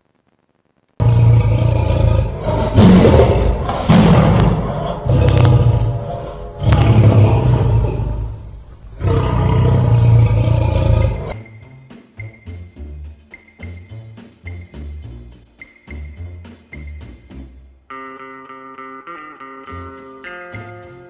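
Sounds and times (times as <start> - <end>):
lion roaring: 1.0 - 11.4.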